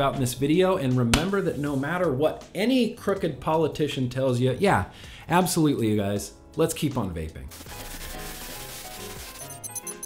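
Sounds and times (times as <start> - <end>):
music: 0.0 - 10.0
scratchy glitch sound effect: 7.5 - 10.0.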